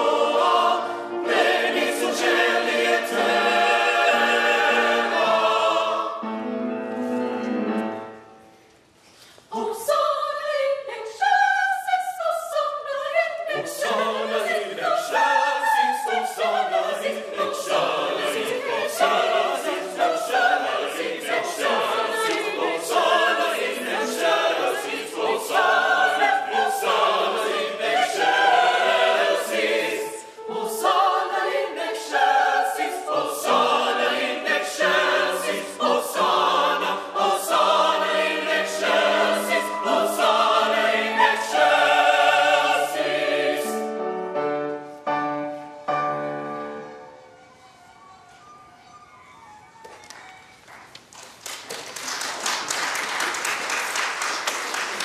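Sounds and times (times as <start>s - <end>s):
mixed choir singing: 0.0s - 6.5s, 9.5s - 44.9s.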